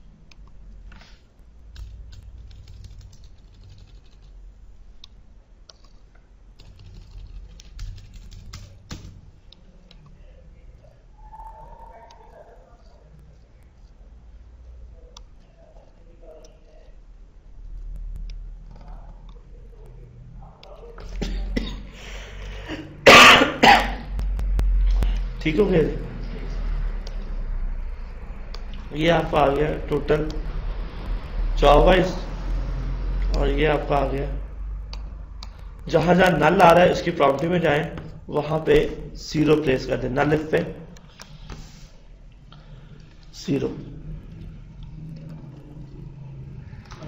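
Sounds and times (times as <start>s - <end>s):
steady low hum: 0.0s - 47.0s
mouse and keyboard clicking: 5.0s - 10.1s
person coughing: 21.1s - 24.2s.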